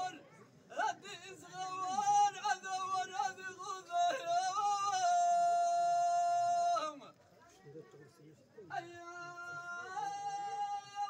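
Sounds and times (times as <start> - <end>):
man singing unaccompanied chant: 0.0 - 7.2, 8.7 - 11.0.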